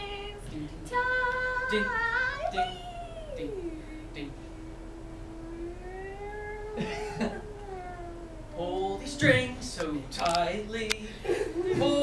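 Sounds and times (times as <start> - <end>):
person singing a long note: 0.9 - 9.0.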